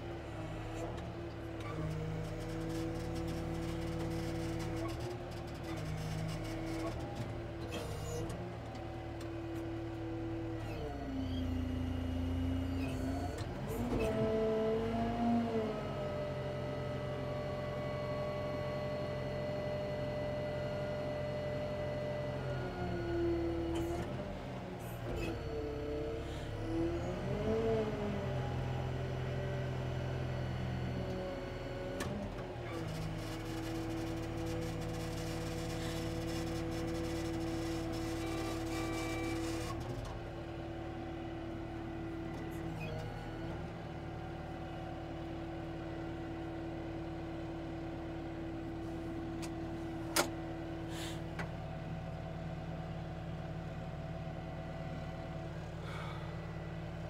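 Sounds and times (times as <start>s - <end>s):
diesel engine running: 30.1s - 57.0s.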